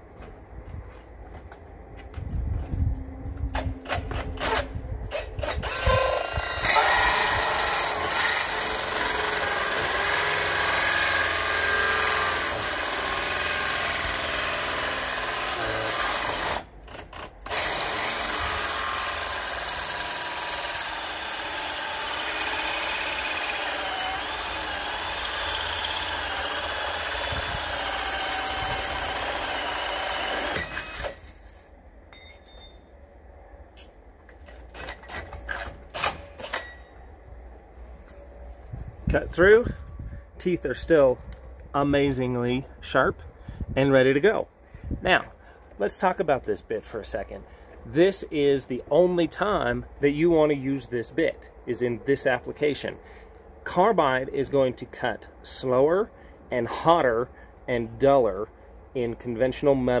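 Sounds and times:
drill hole saw grinding steel: 0:03.9 - 0:31.2.

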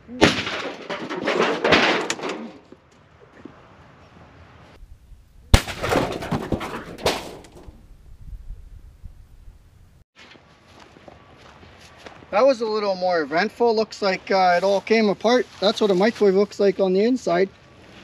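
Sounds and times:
debris clattering down: 0:00.2 - 0:02.8, 0:05.5 - 0:07.9
explosion bang: 0:05.5 - 0:07.9.

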